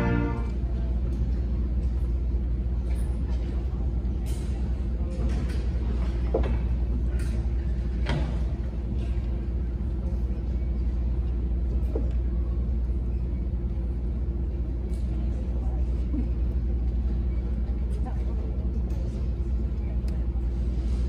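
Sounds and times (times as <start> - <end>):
audience murmuring: 0.0 - 2.7
low room rumble: 0.0 - 21.0.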